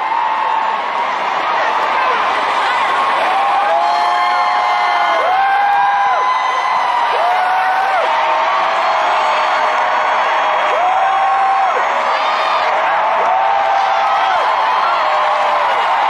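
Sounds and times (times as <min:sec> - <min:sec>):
stadium crowd cheering and whooping: 0:00.0 - 0:16.0.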